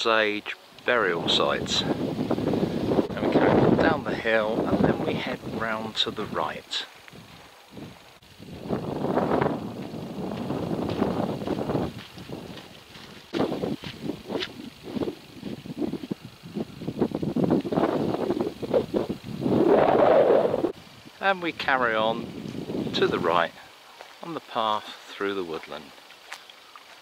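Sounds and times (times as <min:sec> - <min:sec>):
wind buffeting microphone: 0:00.9 - 0:06.4, 0:07.1 - 0:23.6
footsteps on sandy gravel: 0:06.9 - 0:19.6, 0:22.4 - 0:27.0.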